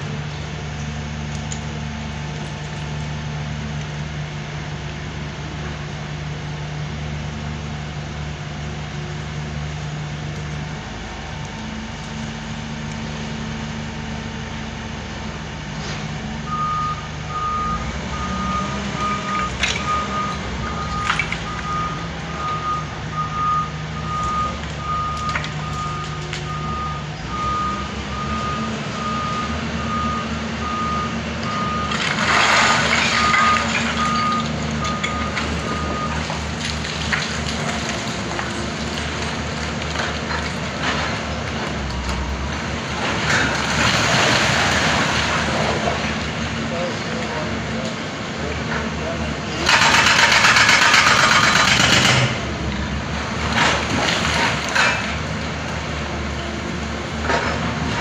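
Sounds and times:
diesel engine running: 0.0 - 58.0
loud burst of noise: 49.6 - 52.5.

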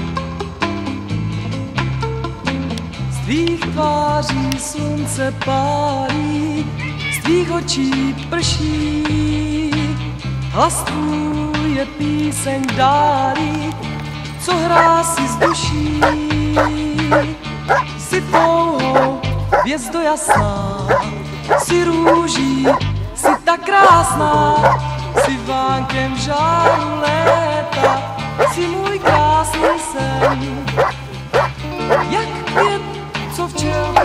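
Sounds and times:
pop song with singing: 3.1 - 34.0
dog barking: 14.7 - 25.4, 26.6 - 32.8.

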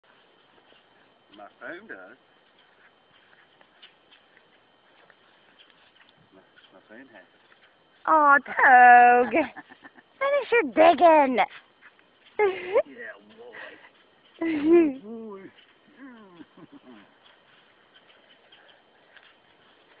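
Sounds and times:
dog paws scratching dirt: 0.0 - 8.5, 9.3 - 20.0.

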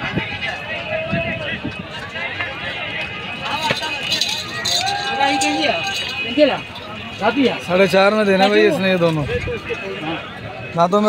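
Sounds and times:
crowd chatter: 0.0 - 11.0
men talking: 0.4 - 11.0.

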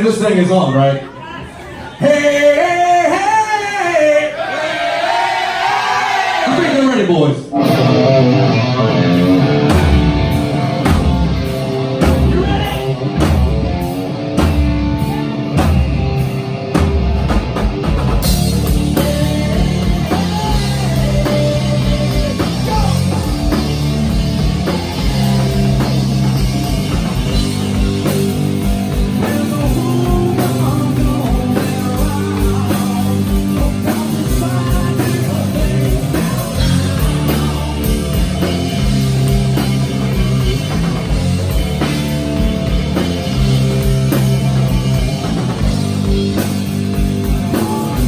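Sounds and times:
man singing lead vocal: 1.9 - 4.6, 18.5 - 23.6, 29.1 - 38.4, 47.4 - 48.0
hard rock band playing live: 7.4 - 48.0.

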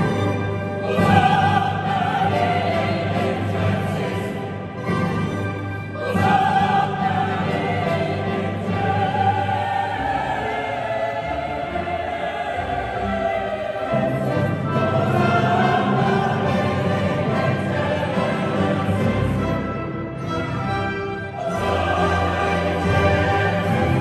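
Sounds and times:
mixed choir singing sacred music: 0.0 - 24.0
string orchestra: 0.0 - 24.0.

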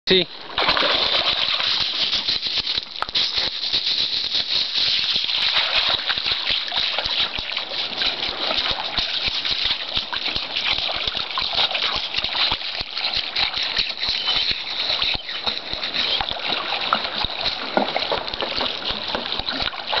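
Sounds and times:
shallow water splashing: 0.3 - 20.0
dense crackle: 1.0 - 5.3.

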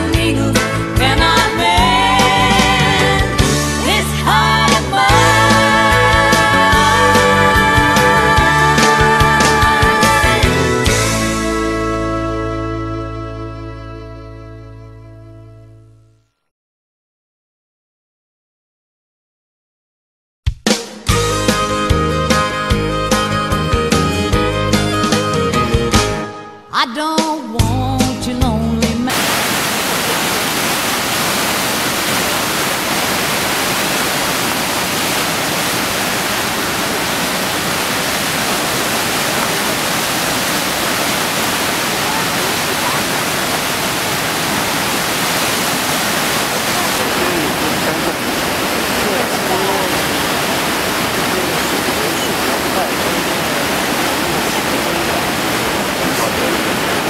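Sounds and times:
river water rushing: 29.1 - 57.0.

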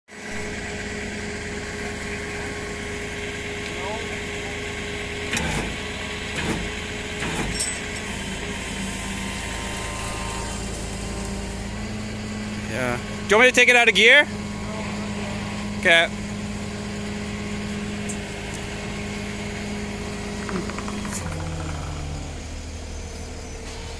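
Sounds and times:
truck engine running: 0.2 - 23.9.

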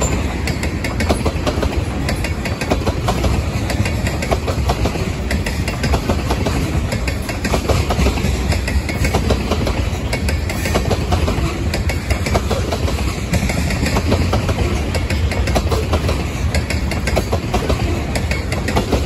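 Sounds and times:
freight train rumbling on rails: 0.0 - 19.0.

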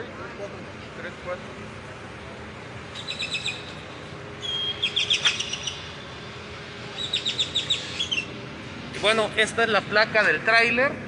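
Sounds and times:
low background hum: 0.0 - 11.0
bird chirping: 2.9 - 3.8, 4.4 - 6.0, 6.9 - 8.4.

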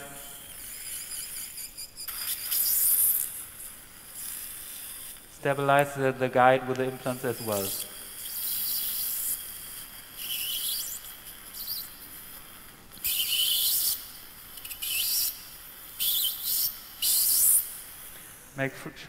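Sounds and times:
high-pitched dental drill whine: 0.0 - 5.8, 6.9 - 18.3.

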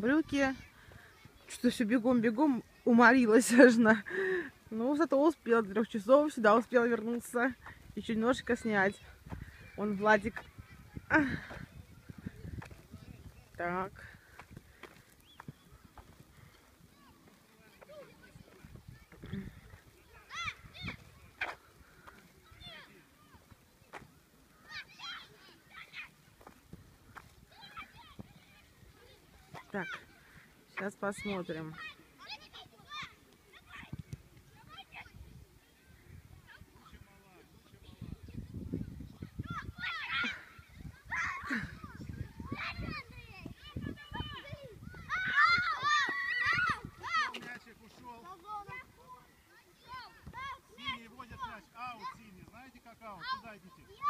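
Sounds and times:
outdoor background noise: 0.0 - 54.0
children shouting: 24.6 - 26.2, 39.4 - 47.4.

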